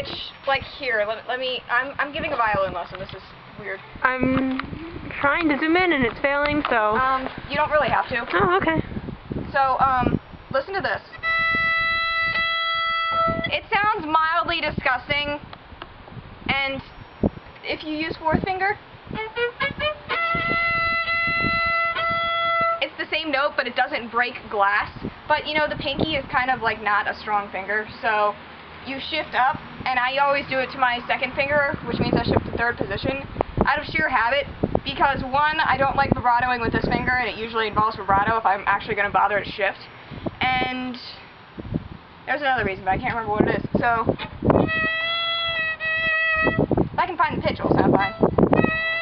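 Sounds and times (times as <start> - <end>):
violin holding high note: 11.1 - 13.6, 19.1 - 22.8, 44.6 - 46.8, 47.9 - 49.0.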